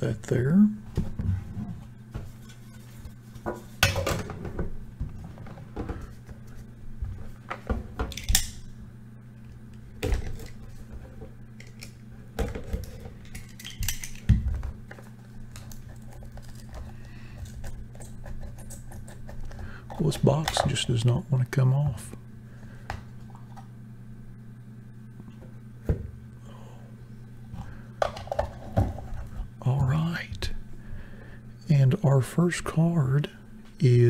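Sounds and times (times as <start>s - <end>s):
low hum: 0.0s - 34.0s.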